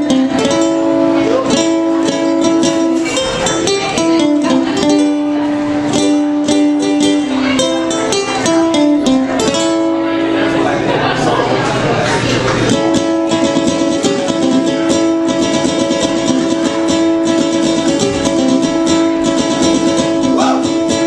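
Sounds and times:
ukulele blues: 0:00.0 - 0:21.0.

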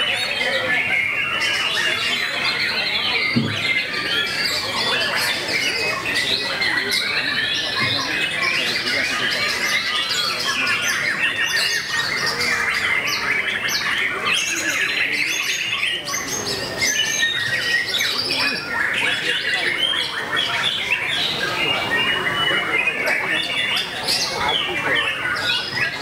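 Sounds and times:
bird singing varied chirps: 0:00.0 - 0:26.0
other birds singing: 0:00.0 - 0:26.0.

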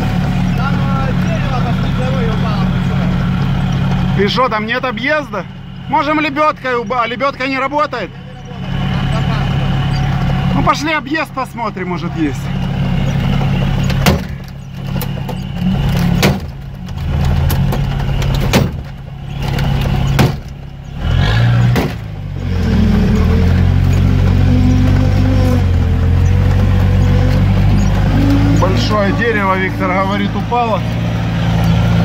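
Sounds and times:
car engine from inside cab: 0:00.0 - 0:32.0
knocks from body and suspension: 0:12.5 - 0:28.7.

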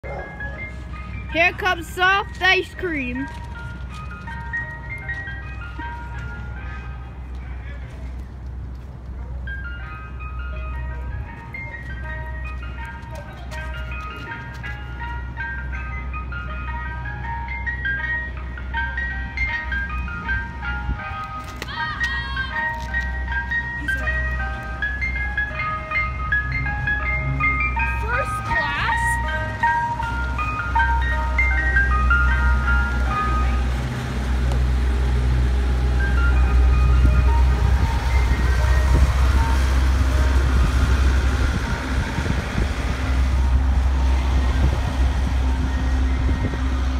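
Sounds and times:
ice cream truck chime melody: 0:00.0 - 0:46.9
truck engine rumbling: 0:00.0 - 0:46.9.

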